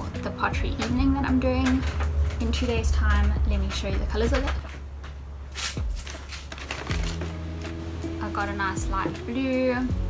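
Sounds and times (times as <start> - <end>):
soft background music: 0.0 - 10.0
paper bag rustling: 4.6 - 8.0.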